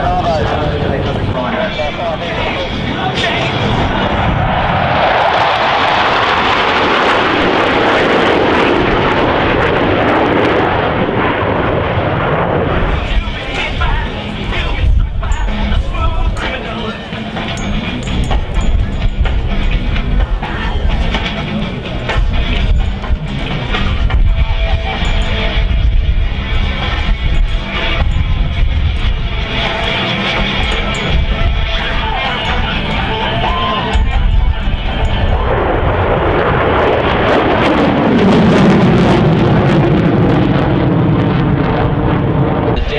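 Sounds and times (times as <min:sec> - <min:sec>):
jets flying over: 0:00.0 - 0:42.9
loud music: 0:12.7 - 0:37.2.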